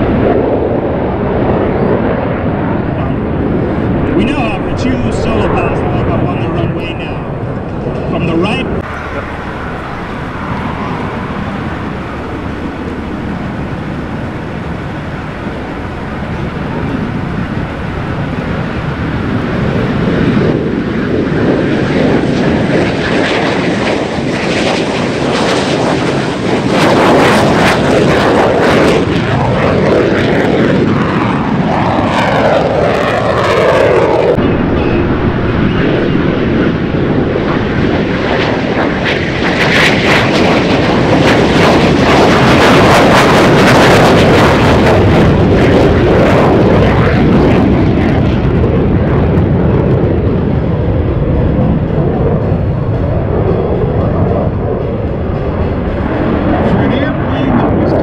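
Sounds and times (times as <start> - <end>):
falling jet whine: 0.0 - 58.0
jet roar: 0.0 - 58.0.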